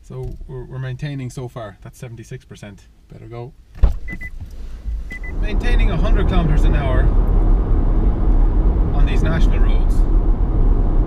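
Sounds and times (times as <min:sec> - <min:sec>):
road tyre and wind noise in car: 0:03.7 - 0:11.0.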